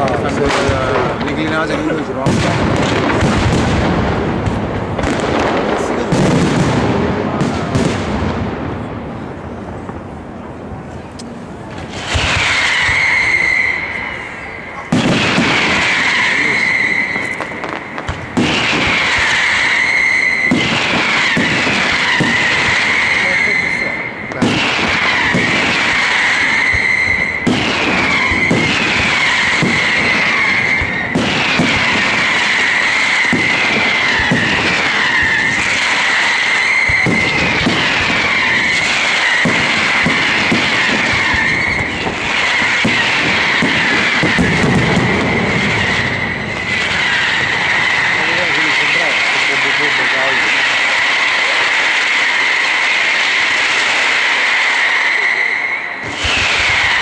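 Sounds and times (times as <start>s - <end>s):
fireworks bangs and crackles: 0.0s - 57.0s
fireworks whistling: 0.0s - 57.0s.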